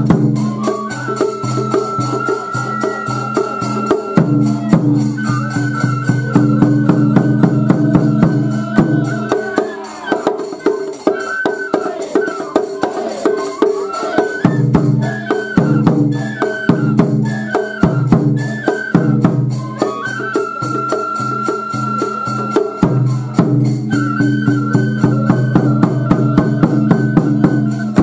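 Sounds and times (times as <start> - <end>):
drum and percussion beats: 0.0 - 28.0
high flute melody: 0.0 - 28.0.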